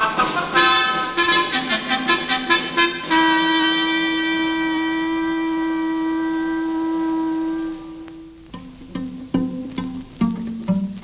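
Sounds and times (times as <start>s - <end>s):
long note on wind instrument: 0.5s - 8.6s.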